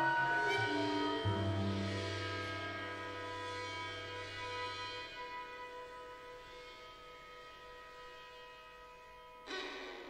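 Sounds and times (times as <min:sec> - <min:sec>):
sustained high chord: 0:00.0 - 0:08.3.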